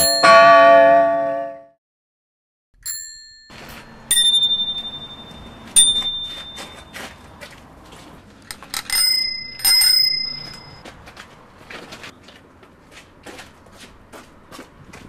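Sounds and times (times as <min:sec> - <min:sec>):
bicycle bell ringing: 0:00.0 - 0:01.6, 0:02.8 - 0:07.2, 0:08.7 - 0:10.8.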